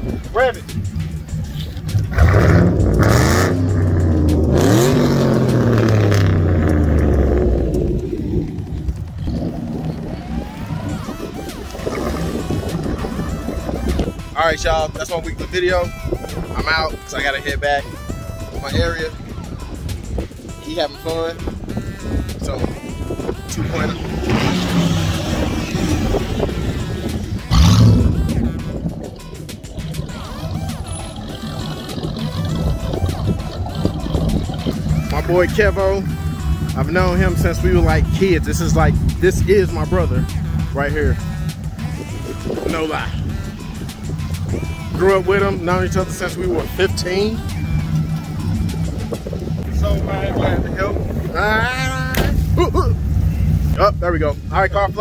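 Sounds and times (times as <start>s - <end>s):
music playing: 0.0s - 55.0s
car engine accelerating hard: 1.0s - 14.0s, 23.6s - 29.1s, 29.7s - 42.1s.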